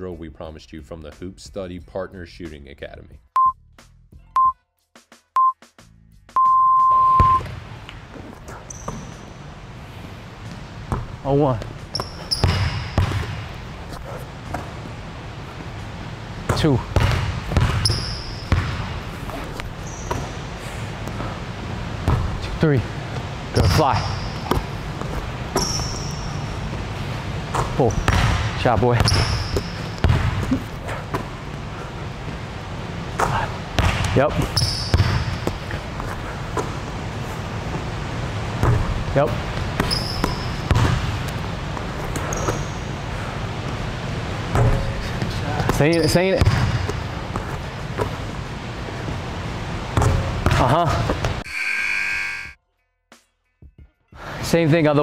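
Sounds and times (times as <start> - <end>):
timer beeps: 3.4 - 3.6, 4.4 - 4.6, 5.4 - 5.6, 6.4 - 7.4, 51.4 - 52.6
gym background noise: 6.4 - 51.5
basketball bouncing on wooden floor: 10.9 - 13.5, 16.5 - 20.4, 22.0 - 22.4, 23.6 - 26.4, 27.5 - 31.6, 33.2 - 36.8, 38.6 - 39.0, 39.6 - 42.7, 44.5 - 48.4, 49.9 - 51.4.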